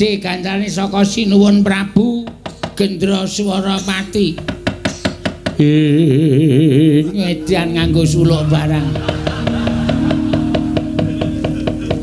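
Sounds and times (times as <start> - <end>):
long held note: 7.0 - 12.0.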